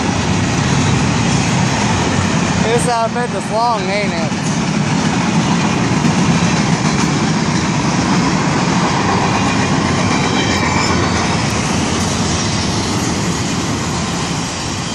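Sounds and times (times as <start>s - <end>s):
freight train wheels rumbling on rail: 0.0s - 14.9s.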